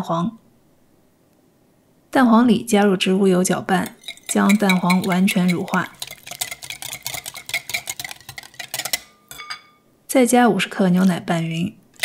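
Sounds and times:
utensil clicking against bowl: 0:03.9 - 0:09.1.

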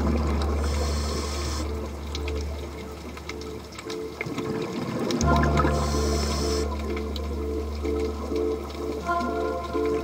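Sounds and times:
low drone: 0:05.2 - 0:09.1.

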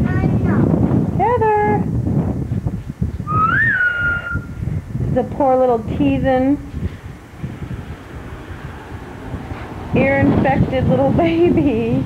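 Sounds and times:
high whistle-like tone: 0:03.2 - 0:04.6.

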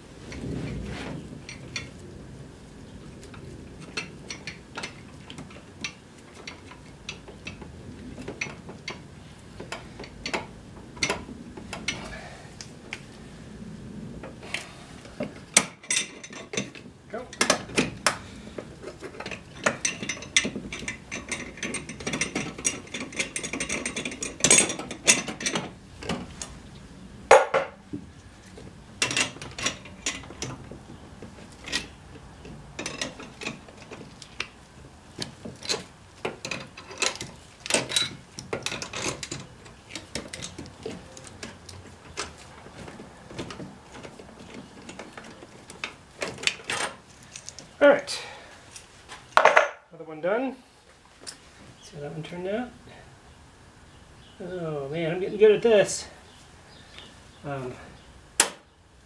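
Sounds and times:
hand tools clicking on metal: 0:15.2 - 0:26.5, 0:31.6 - 0:34.6, 0:35.2 - 0:47.7.

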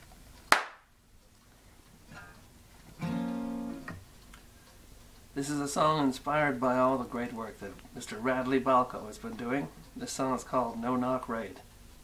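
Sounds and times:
sharp hand clap: 0:00.5 - 0:00.9.

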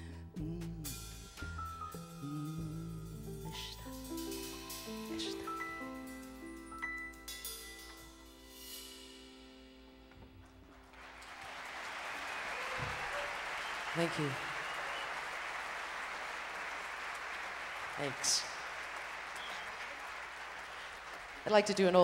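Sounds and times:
jazz band chord: 0:00.0 - 0:10.2
audience applause: 0:10.7 - 0:22.0.

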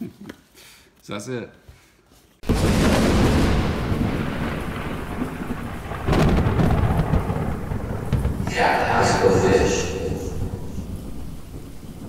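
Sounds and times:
steady rain: 0:02.4 - 0:12.0
thunder rumbling: 0:02.4 - 0:12.0.

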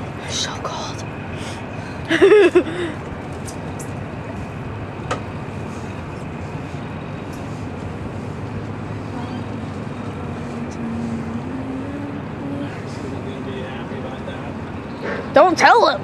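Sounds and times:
boat engine droning: 0:00.0 - 0:16.0.

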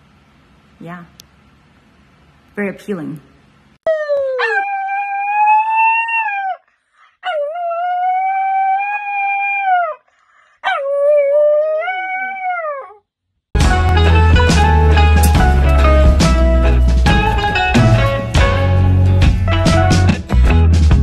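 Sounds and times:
dog howling: 0:03.9 - 0:06.6, 0:07.2 - 0:10.0, 0:10.7 - 0:13.0
music: 0:13.6 - 0:21.0.

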